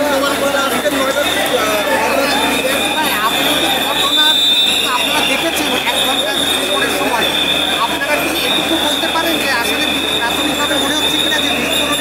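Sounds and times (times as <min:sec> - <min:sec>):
crowd of voices: 0:00.0 - 0:12.0.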